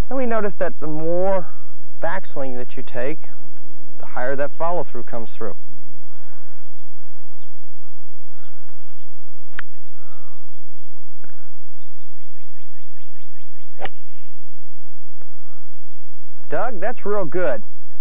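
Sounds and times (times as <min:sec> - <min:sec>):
golf club hitting ball: 0:13.8 - 0:14.4.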